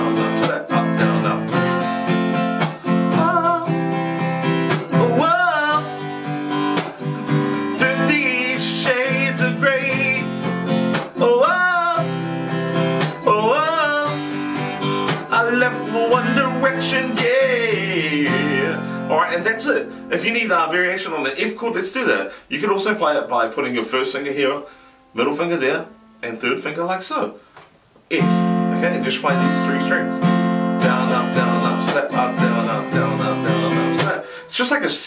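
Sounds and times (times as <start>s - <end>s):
acoustic guitar strumming: 0.0s - 21.9s, 23.7s - 26.6s, 28.1s - 35.0s
percussive slap on guitar strings: 2.6s - 2.8s, 4.7s - 5.0s, 6.7s - 7.1s, 10.9s - 11.2s, 13.0s - 13.2s, 15.1s - 15.3s.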